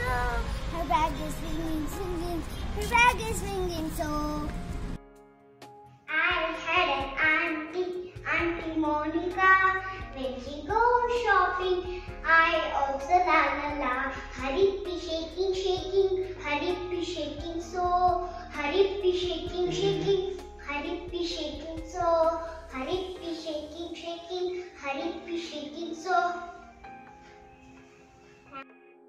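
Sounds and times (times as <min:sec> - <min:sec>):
girl singing: 0:00.0 - 0:04.6, 0:06.1 - 0:26.3
low accompaniment notes: 0:19.2 - 0:21.0.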